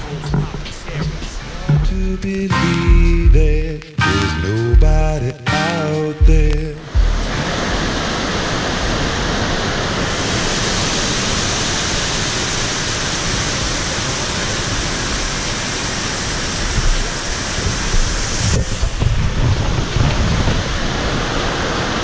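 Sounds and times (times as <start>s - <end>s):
waterfall roaring: 0.0s - 22.0s.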